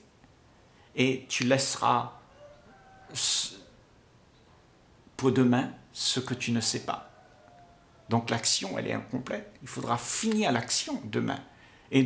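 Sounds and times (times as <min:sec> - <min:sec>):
man speaking: 0:01.0 - 0:02.2, 0:03.1 - 0:03.7, 0:05.2 - 0:07.0, 0:08.1 - 0:12.0
man's sharp breath: 0:11.5 - 0:11.9.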